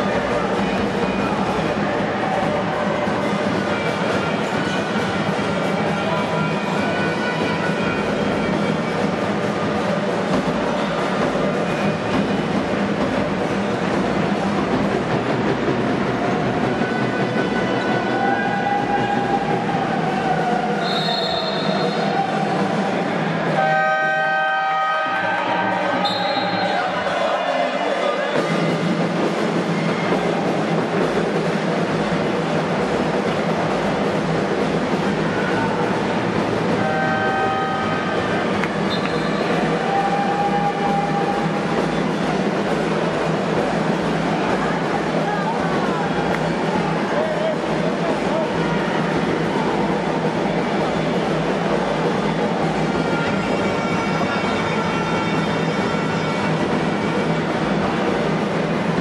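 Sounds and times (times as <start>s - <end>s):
indoor basketball game noise: 0.0s - 59.0s.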